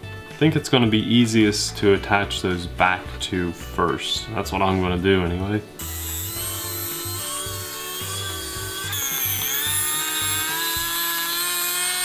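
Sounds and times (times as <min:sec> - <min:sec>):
electric screwdriver whining: 0:05.8 - 0:12.0.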